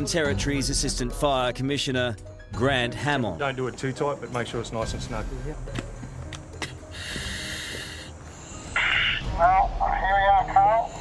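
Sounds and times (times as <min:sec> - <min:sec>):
air hissing through face mask: 0:06.9 - 0:09.2.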